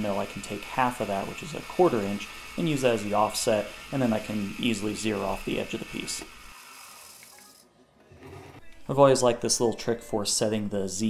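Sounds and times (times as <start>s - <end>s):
man talking: 0.0s - 6.3s, 8.9s - 11.0s.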